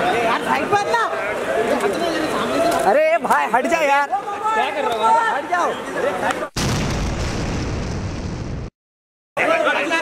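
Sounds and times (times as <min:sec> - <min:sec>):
dramatic boom rumble: 0:06.6 - 0:08.7.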